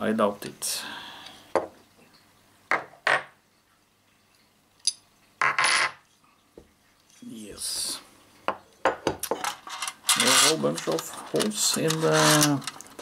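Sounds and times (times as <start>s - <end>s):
scraping rattle: 9.4s - 13.0s.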